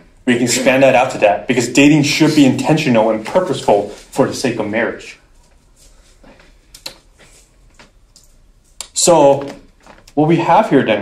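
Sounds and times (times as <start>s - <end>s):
man speaking: 0.2s - 5.2s, 8.8s - 11.0s.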